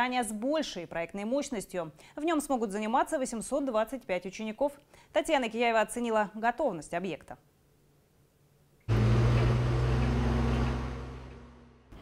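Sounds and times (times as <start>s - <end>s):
diesel engine humming: 8.9s - 12.0s.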